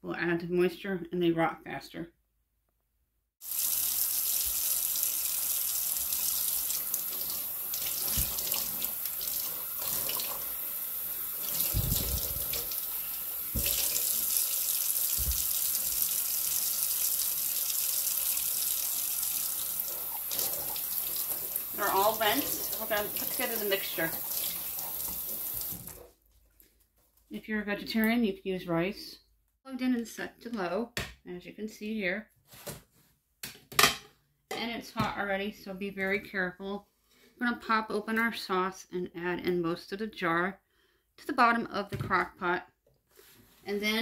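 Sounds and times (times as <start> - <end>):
faucet running into steel sink: 3.4 - 26.0.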